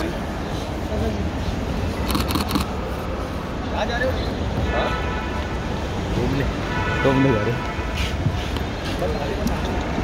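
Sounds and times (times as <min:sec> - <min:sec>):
crowd chatter: 0:00.0 - 0:10.0
camera shutters clicking: 0:02.0 - 0:02.7.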